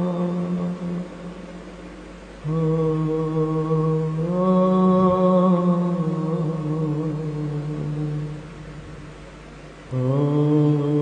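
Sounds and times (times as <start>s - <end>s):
low voice chanting: 0.0s - 1.5s, 2.4s - 9.1s, 9.9s - 11.0s.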